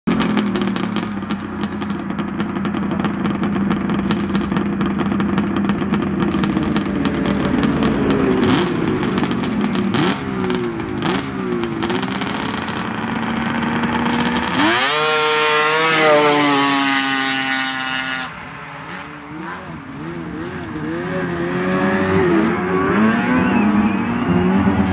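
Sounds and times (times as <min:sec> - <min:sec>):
snowmobile engine revving: 0:00.1 - 0:24.9.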